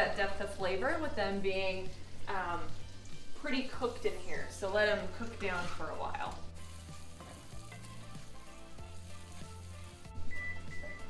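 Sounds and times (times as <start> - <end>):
vegetables sizzling in a skillet: 0.0 - 11.0
wooden spoon stirring: 2.9 - 10.4
oven timer beeping: 10.2 - 11.0.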